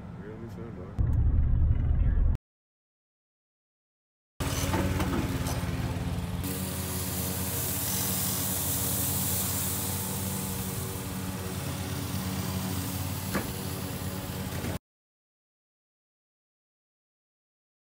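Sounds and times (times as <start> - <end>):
lawn mower engine running: 4.4 - 14.8.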